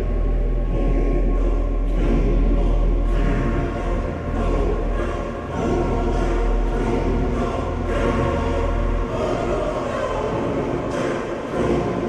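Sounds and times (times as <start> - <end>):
choir singing sustained chords: 0.0 - 12.0
deep low drone: 0.0 - 12.0.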